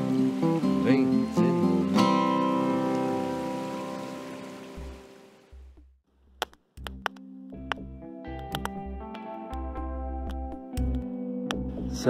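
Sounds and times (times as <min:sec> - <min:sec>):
acoustic guitar chord ringing: 0:00.0 - 0:04.7
soft music: 0:00.0 - 0:05.9, 0:06.8 - 0:12.0.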